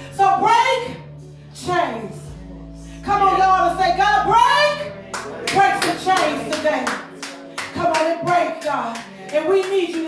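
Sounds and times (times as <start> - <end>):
hands clapping: 5.1 - 10.0.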